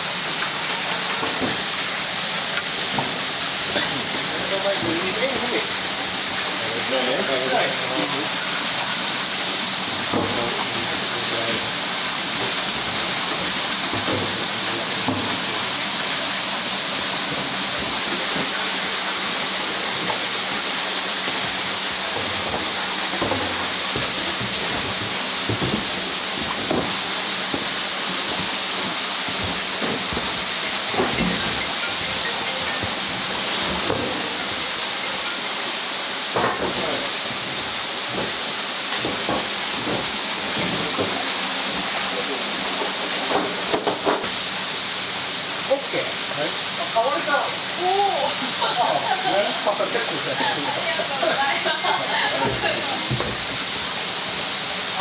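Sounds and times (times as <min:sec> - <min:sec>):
running water rushing: 0:00.0 - 0:55.0.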